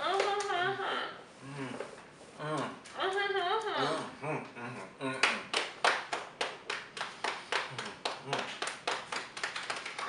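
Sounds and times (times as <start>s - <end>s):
rapid hand claps: 5.2s - 10.0s.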